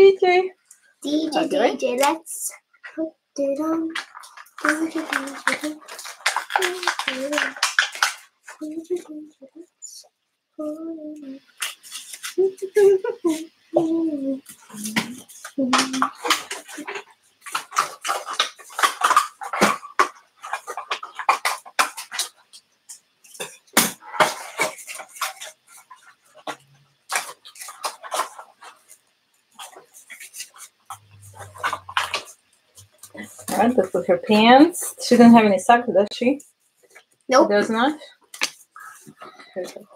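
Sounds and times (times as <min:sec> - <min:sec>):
plastic clicks and rustles: 0:03.9 - 0:09.2, 0:14.5 - 0:34.9
girl beatboxing: 0:06.6 - 0:07.6, 0:08.6 - 0:10.0, 0:12.2 - 0:16.2.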